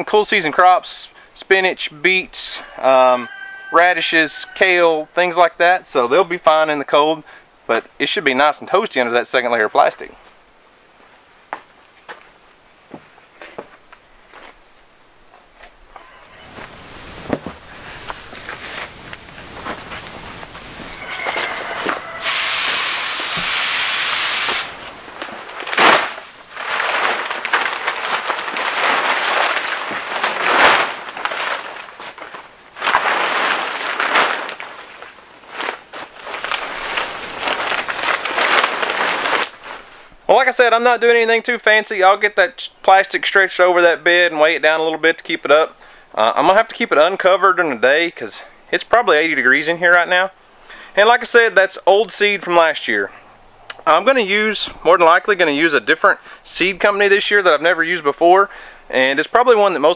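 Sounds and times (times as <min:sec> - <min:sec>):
plastic sheeting crackling: 0:16.3 - 0:40.6.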